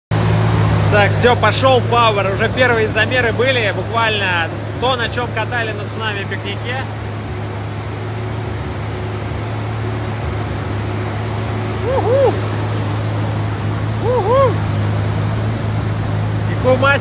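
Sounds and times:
low mechanical drone: 0.1 - 17.0.

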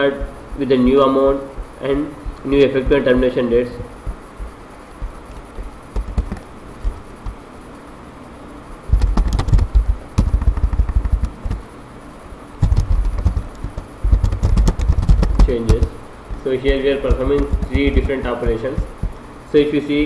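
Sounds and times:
computer keyboard typing: 0.0 - 7.4, 8.9 - 11.6, 12.6 - 19.2.

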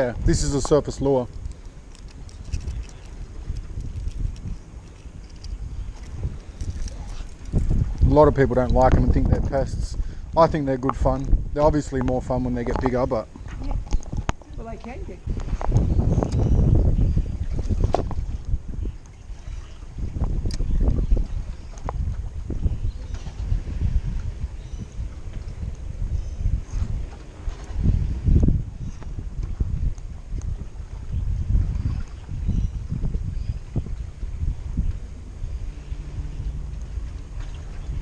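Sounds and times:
water lapping: 0.0 - 11.0, 17.4 - 25.6, 33.0 - 38.0
gusty wind on microphone: 0.0 - 38.0.

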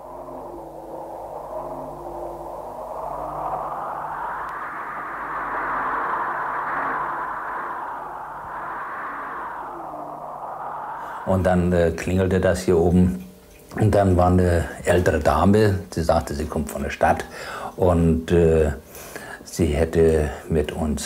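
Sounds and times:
rushing noise: 0.0 - 12.8
faint low hum: 0.0 - 20.7.

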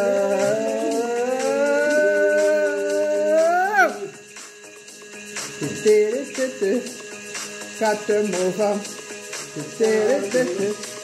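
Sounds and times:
music with low drone: 0.0 - 11.0.

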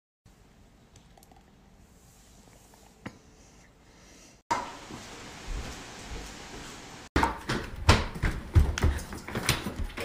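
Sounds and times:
room hiss: 1.8 - 7.1.

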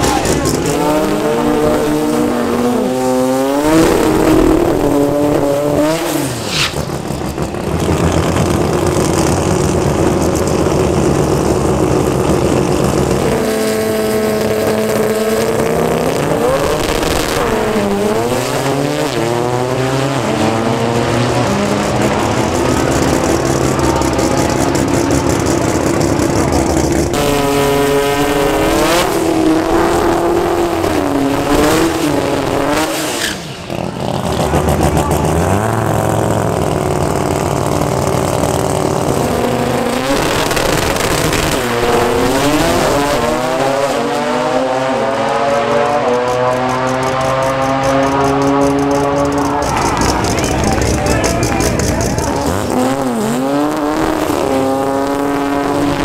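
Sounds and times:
car engines revving high: 0.0 - 56.0.

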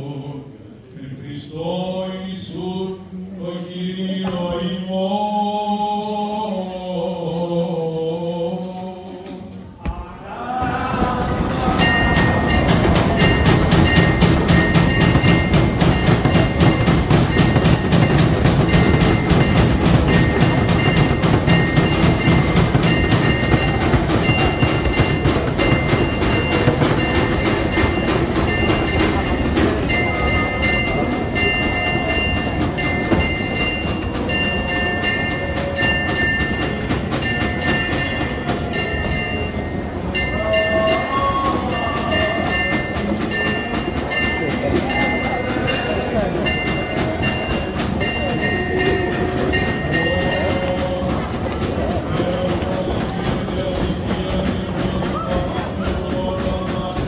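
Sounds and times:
crowd talking: 0.0 - 57.0
church bells ringing: 11.4 - 54.9.

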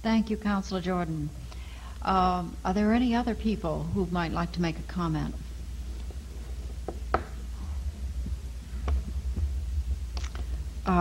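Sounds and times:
low electrical hum: 0.0 - 11.0
faint knocks: 6.6 - 7.5.

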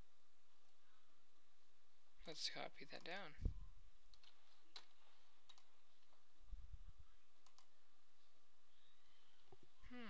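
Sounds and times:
computer mouse clicks: 4.1 - 6.1, 7.4 - 7.7.

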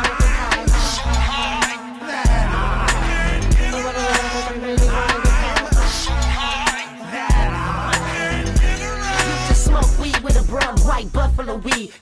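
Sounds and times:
heavy kick drum: 0.0 - 1.0, 3.5 - 3.8, 4.8 - 6.1, 7.3 - 7.6, 8.6 - 8.8, 9.5 - 11.1
rapping over a beat: 0.0 - 12.0.

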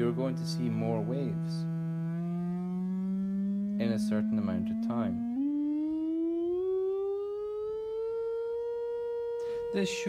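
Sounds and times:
rising sine-wave tone: 0.0 - 10.0.

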